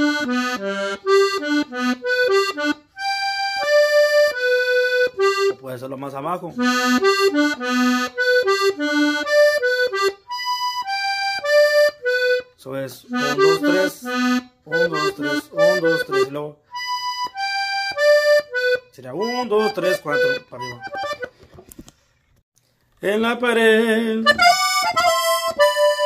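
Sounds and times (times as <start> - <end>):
button accordion playing runs: 0.0 - 5.7, 6.6 - 21.4, 24.2 - 26.0.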